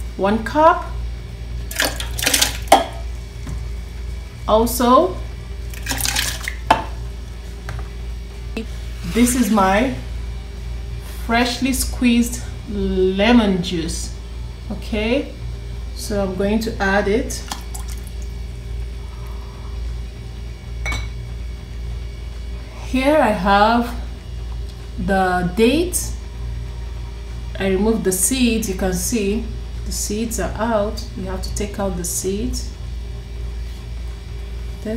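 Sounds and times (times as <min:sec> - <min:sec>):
steady low hum: 0:00.0 - 0:34.9
ingredients splashing into water: 0:01.7 - 0:03.0, 0:05.7 - 0:06.8
kitchenware clinking: 0:20.8 - 0:21.2.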